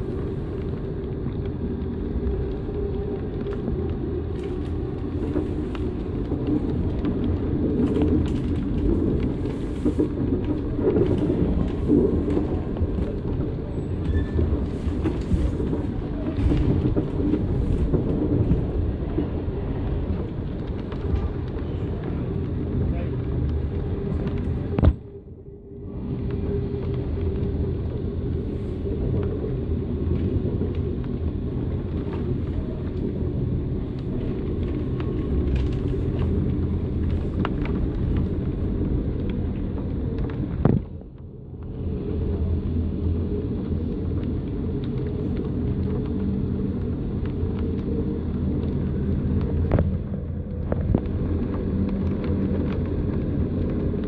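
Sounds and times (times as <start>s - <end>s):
train rumble from inside carriage: 0.0s - 54.0s.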